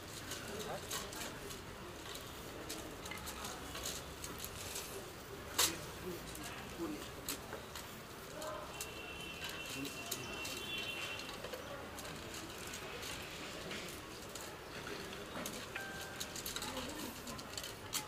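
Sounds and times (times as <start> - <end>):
faint indistinct voices: 0.0 - 18.0.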